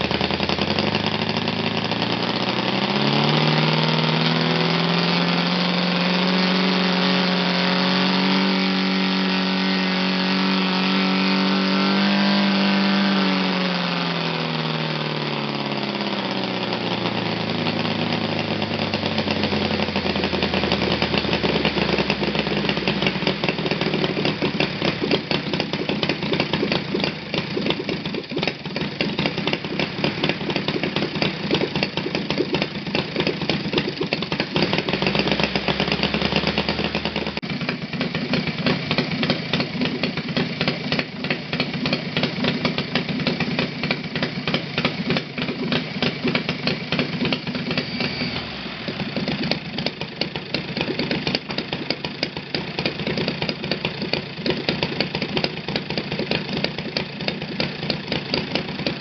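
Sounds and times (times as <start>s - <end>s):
model airplane engine running: 0.0s - 59.0s.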